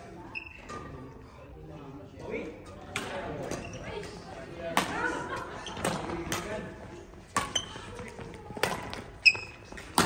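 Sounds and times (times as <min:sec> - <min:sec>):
players' voices: 0:00.0 - 0:10.0
badminton racket hitting shuttlecock: 0:08.6 - 0:10.0.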